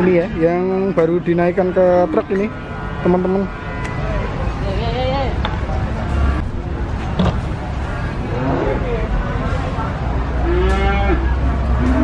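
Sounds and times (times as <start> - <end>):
cow mooing: 10.4 - 12.0.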